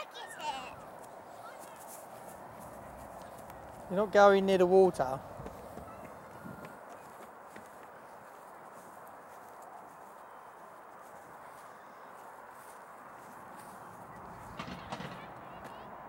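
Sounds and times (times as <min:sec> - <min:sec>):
faint outdoor background noise: 0:00.0 - 0:16.0.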